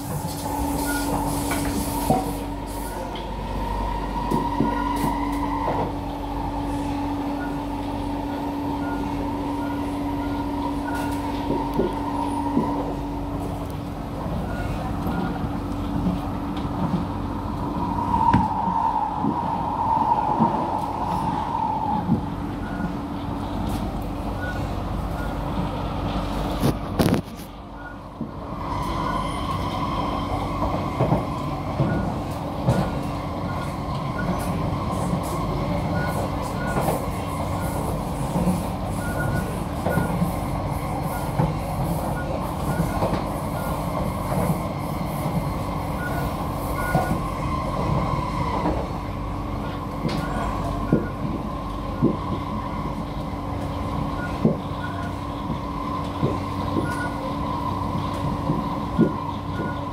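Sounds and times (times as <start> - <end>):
wheels rumbling on rail: 0.0 - 59.9
train clicks: 41.1 - 45.4, 49.7 - 52.5, 53.6 - 57.2, 58.0 - 59.9.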